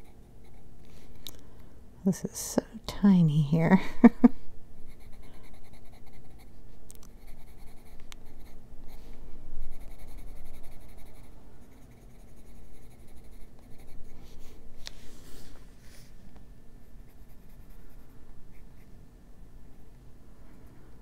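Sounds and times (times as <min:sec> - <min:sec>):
coloured pencil scratching on paper: 0:04.9 - 0:06.5, 0:07.2 - 0:09.0, 0:09.7 - 0:14.5, 0:16.8 - 0:18.9.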